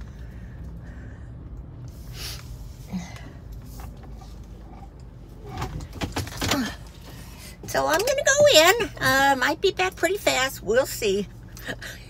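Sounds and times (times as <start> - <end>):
car engine and tyres rumble: 0.0 - 12.0.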